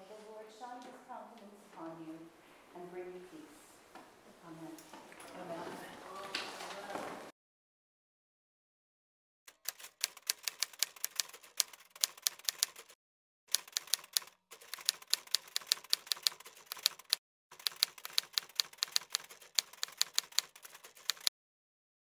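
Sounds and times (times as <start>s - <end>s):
typewriter keystrokes clacking: 9.5s - 21.3s.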